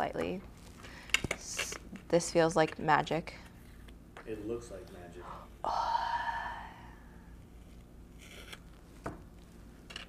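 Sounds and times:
faint tape rip: 7.6 - 8.8
tape peeling off wood: 7.7 - 8.8.

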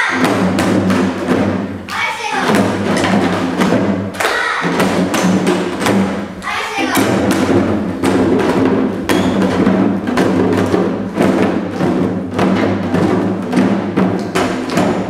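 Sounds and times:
traditional accompaniment music: 0.0 - 15.0.

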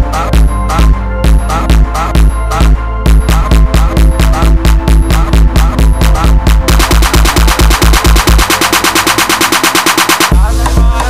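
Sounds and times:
electronic dance music: 0.0 - 11.0
fast percussion hits: 3.1 - 11.0.

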